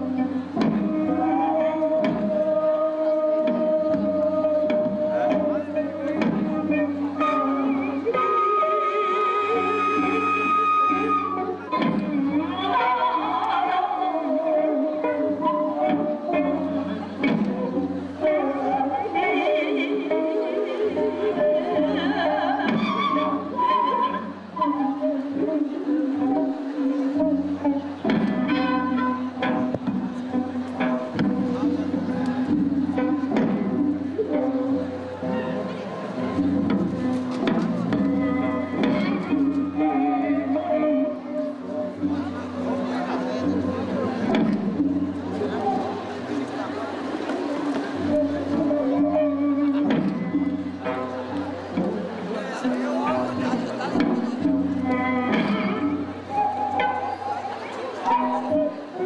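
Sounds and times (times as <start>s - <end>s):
bowed strings melody: 0.0s - 59.0s.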